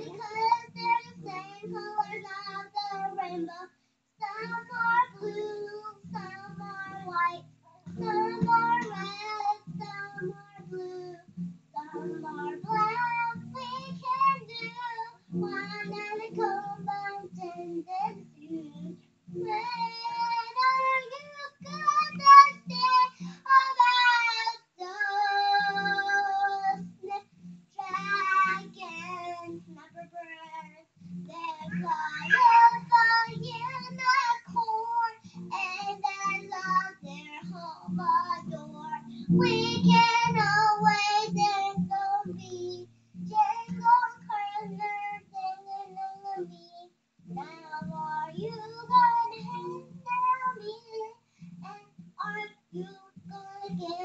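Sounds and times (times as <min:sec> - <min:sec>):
acoustic guitar strumming: 0:00.0 - 0:03.6, 0:04.4 - 0:46.6, 0:47.2 - 0:54.0
girl singing: 0:00.0 - 0:54.0.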